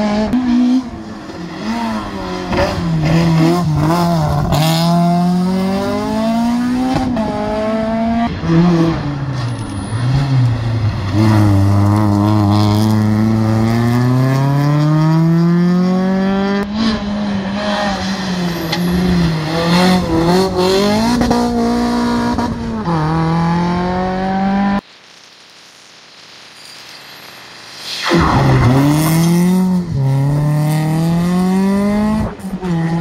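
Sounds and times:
rally car engines revving: 0.0 - 24.8, 28.0 - 33.0.

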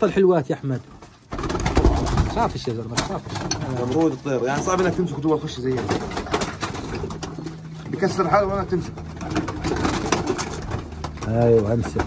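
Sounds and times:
pigeon wings flapping: 1.0 - 12.0
pigeons cooing: 1.2 - 12.0.

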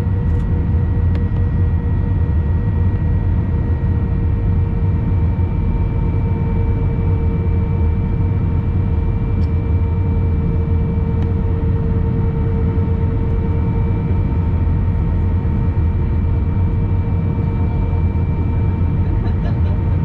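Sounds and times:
jet engine rumble in cabin: 0.0 - 20.0.

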